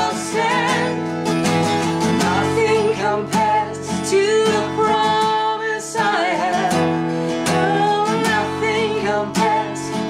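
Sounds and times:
woman singing worship song: 0.0s - 1.1s, 2.1s - 10.0s
strummed acoustic guitar: 0.0s - 10.0s.

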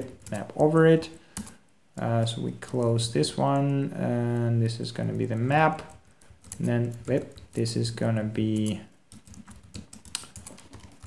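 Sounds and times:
keyboard typing: 1.3s - 1.6s, 3.5s - 11.0s.

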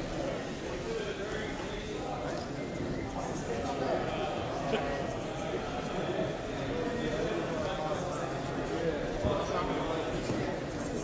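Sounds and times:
hubbub of many people talking: 0.0s - 11.0s.

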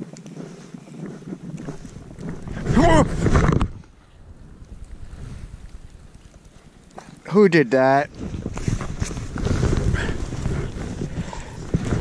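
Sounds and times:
rush of snow noise: 0.0s - 12.0s
footsteps crunching in snow: 8.1s - 12.0s.

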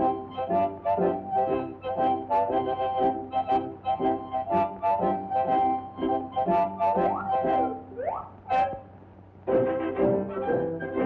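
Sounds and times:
cartoon music: 0.0s - 8.9s
rising pitch swoops: 6.8s - 8.8s.

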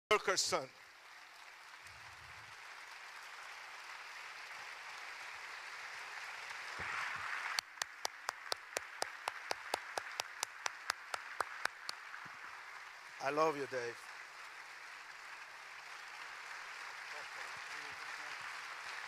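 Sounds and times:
audience applauding: 0.1s - 19.0s
person clapping close by: 7.6s - 12.1s.

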